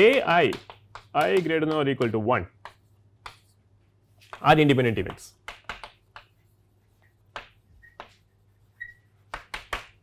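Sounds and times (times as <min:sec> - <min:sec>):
chalk tapping on blackboard: 0:00.0 - 0:10.0
chalk squeaks: 0:06.0 - 0:09.6.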